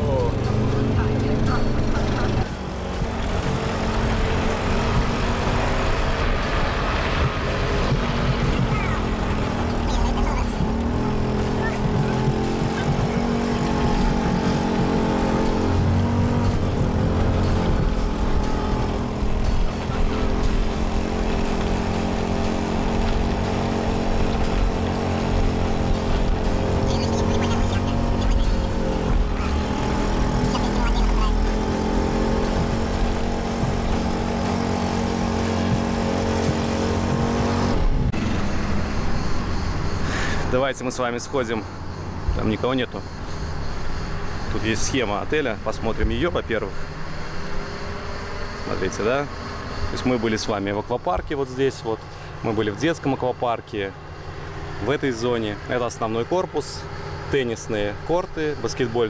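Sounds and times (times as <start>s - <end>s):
cart motor humming: 0.0s - 40.4s
road rumble: 0.0s - 59.0s
wind: 0.0s - 59.0s.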